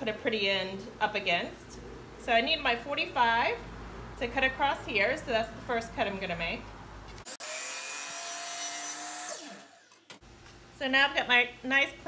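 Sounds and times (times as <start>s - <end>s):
miter saw cutting wood: 7.3s - 10.1s
saw blade spinning down: 7.3s - 10.1s.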